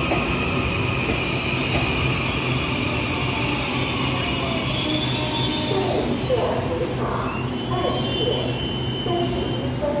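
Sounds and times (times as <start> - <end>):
electric train arriving: 0.0 - 10.0.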